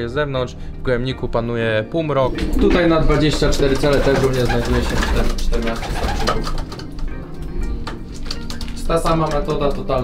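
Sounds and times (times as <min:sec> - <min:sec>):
background music: 0:00.0 - 0:10.0
pigeons cooing: 0:02.3 - 0:06.8.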